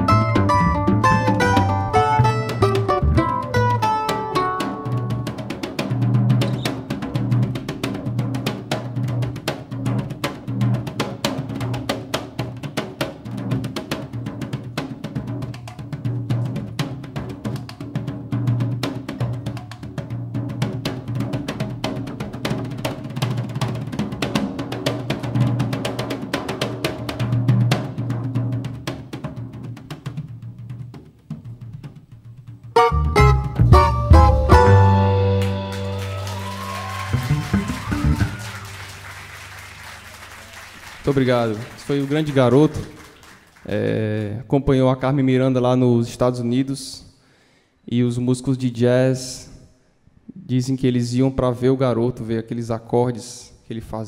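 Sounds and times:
plucked string phrase: 0:00.0 - 0:05.5, 0:32.8 - 0:36.2
hand drumming on toms and snare: 0:00.0 - 0:38.5
low tom pulse: 0:32.8 - 0:35.7.

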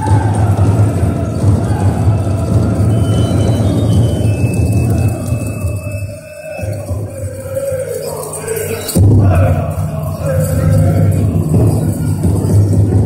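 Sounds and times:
singers chanting high and fast: 0:00.0 - 0:13.0.

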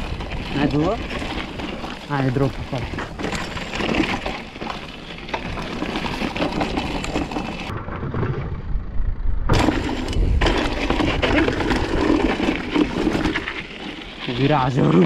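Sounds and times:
tyres crunching over gravel: 0:00.0 - 0:07.8, 0:09.5 - 0:15.0
bike rattling: 0:00.0 - 0:15.0.

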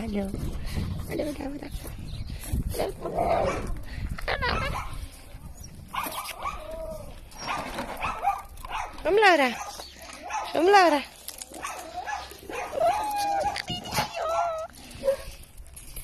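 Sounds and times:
dogs vocalising: 0:02.7 - 0:05.0, 0:05.9 - 0:08.9, 0:11.6 - 0:15.4
dog whining yelp: 0:11.6 - 0:15.2.

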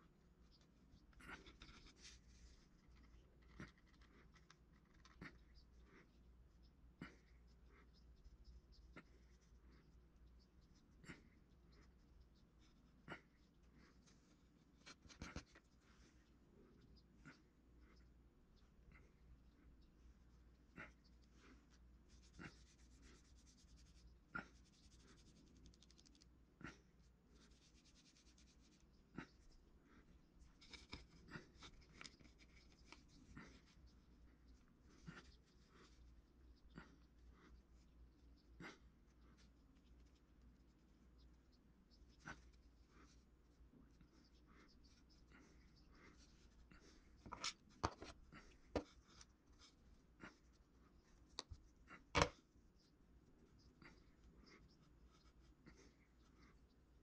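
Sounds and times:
low room hum: 0:00.0 - 0:57.0
tools scratching modelling clay: 0:19.0 - 0:56.9
fingers scratching clay: 0:20.8 - 0:26.3, 0:27.3 - 0:29.6.

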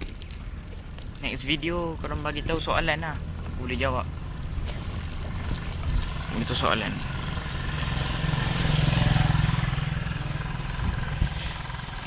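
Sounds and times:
vehicle passing on road: 0:00.0 - 0:12.0.

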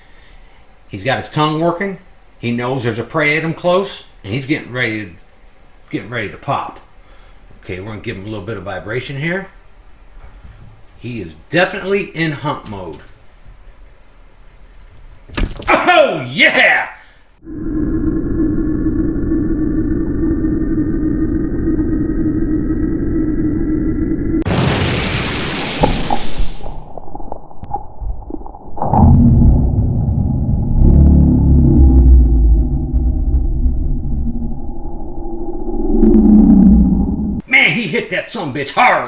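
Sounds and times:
rising electronic tone: 0:17.4 - 0:24.5, 0:28.5 - 0:37.4
low hum: 0:17.4 - 0:37.4
deep rumbling booms: 0:20.6 - 0:37.4.

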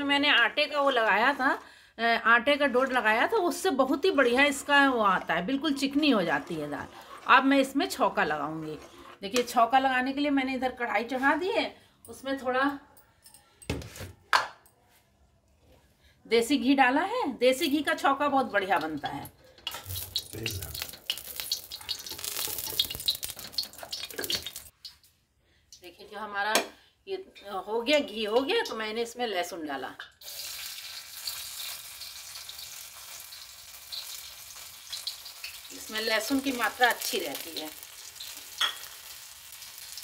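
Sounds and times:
garlic sizzling in hot fat: 0:19.7 - 0:25.0, 0:30.2 - 0:40.0.

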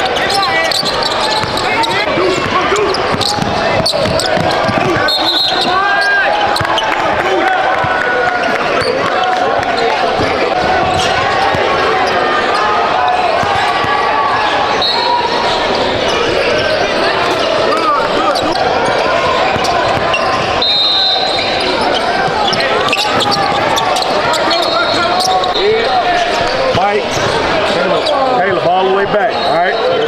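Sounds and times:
sneaker squeaks: 0:00.0 - 0:07.0, 0:07.8 - 0:28.4
babble of echoing voices: 0:00.0 - 0:30.0
basketball dribbling on hardwood: 0:02.3 - 0:05.1.

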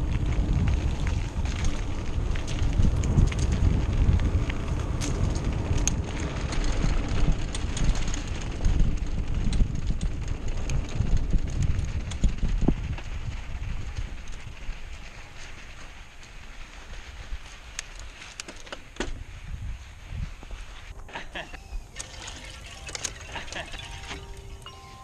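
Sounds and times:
wind buffeting microphone: 0:00.0 - 0:17.6, 0:19.1 - 0:21.1
bike ticking and rattling: 0:00.0 - 0:21.0
bike tyres crunching on dirt: 0:00.0 - 0:25.0.

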